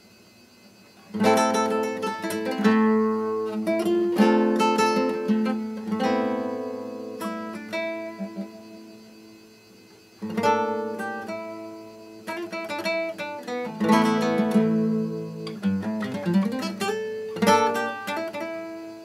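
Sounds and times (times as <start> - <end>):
classical guitar chords: 1.1 - 9.3, 10.2 - 19.0.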